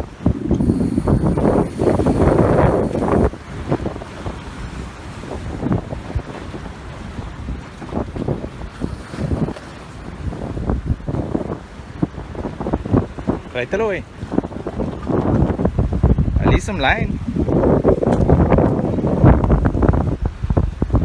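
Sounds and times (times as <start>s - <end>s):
surf against rocks: 0.0s - 21.0s
wind buffeting microphone: 0.0s - 21.0s.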